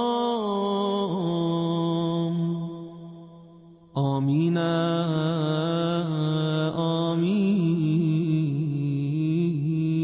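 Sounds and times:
man chanting recitation: 0.0s - 3.2s, 3.9s - 10.0s.

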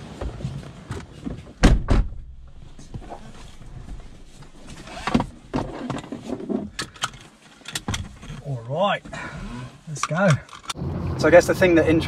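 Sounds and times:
seatbelts being pulled across: 2.9s - 8.5s, 9.1s - 10.7s.

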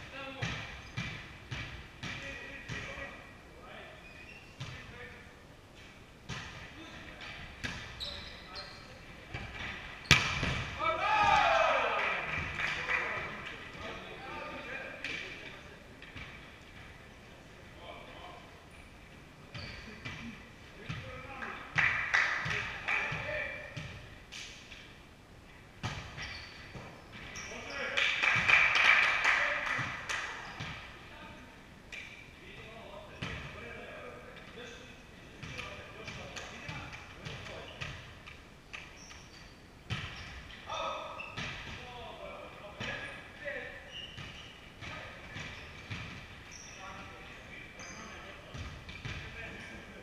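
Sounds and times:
players' voices: 6.5s - 18.8s, 46.5s - 50.0s
hands hitting volleyball: 9.4s - 11.6s.

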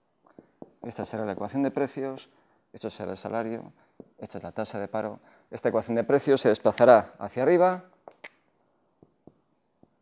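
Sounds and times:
marker cap clicks: 8.0s - 8.4s.

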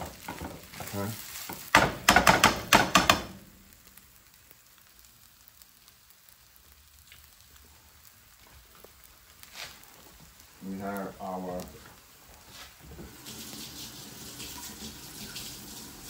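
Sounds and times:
rice sizzling in skillet: 0.0s - 16.0s.

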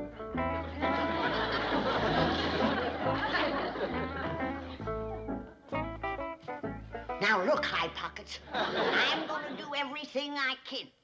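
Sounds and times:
bluegrass banjo and guitar music: 0.0s - 9.9s.

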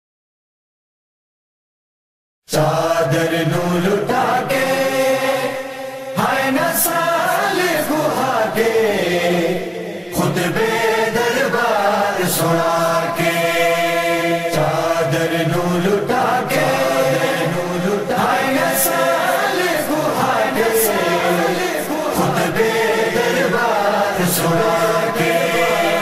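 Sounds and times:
chanted vocal chorus: 2.5s - 26.0s
person singing verses: 2.5s - 26.0s.

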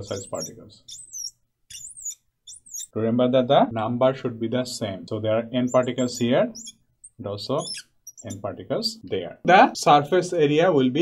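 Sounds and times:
marker squeaking on glass: 0.0s - 3.0s, 5.6s - 9.0s.

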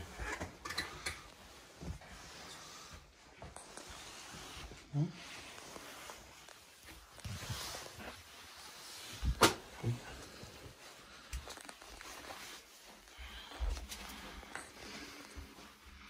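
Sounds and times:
soft footsteps and scuffs: 1.3s - 16.0s.

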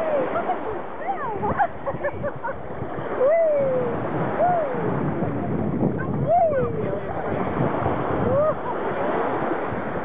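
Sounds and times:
shallow water splashing: 0.0s - 10.0s.

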